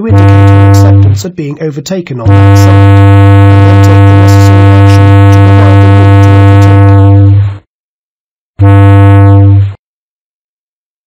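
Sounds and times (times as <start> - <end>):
low ship's whistle blasts: 0.0 - 1.2, 2.3 - 7.4, 8.6 - 9.7.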